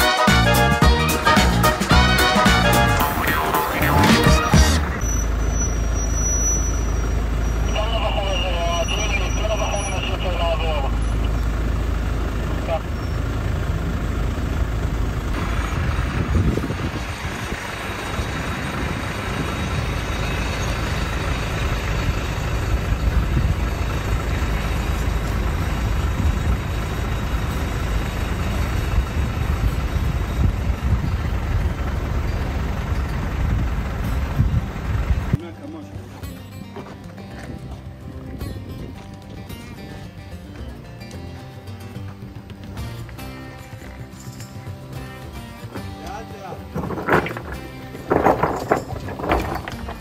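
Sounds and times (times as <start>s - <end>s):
engine low rumble: 0.0s - 50.0s.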